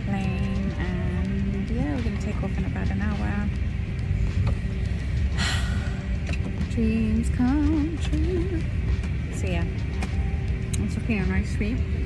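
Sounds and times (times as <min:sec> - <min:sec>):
airliner cabin rumble: 0:00.0 - 0:12.0
background music: 0:00.0 - 0:12.0.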